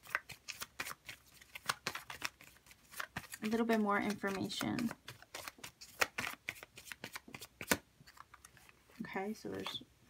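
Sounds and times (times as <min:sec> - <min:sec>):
cards being shuffled: 0:00.0 - 0:09.7.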